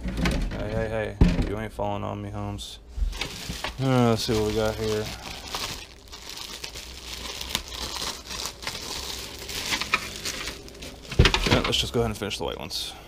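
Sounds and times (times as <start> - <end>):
plastic wrap crinkling: 3.1 - 12.2.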